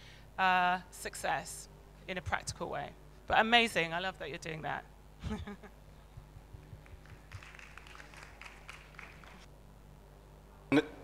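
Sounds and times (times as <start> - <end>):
light scattered applause: 6.8 - 9.5.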